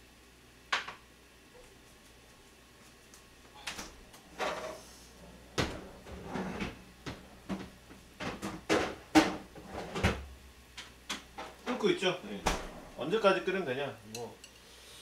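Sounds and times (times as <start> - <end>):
kitchen things knocking and clattering: 5.6 - 10.2.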